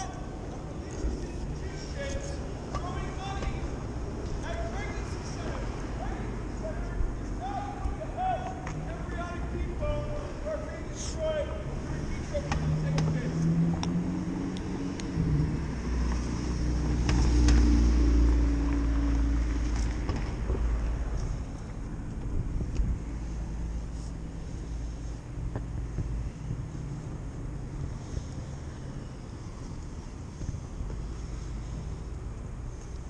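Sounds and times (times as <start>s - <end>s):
traffic hum: 0.0s - 33.0s
vehicle engine passing: 11.6s - 22.0s.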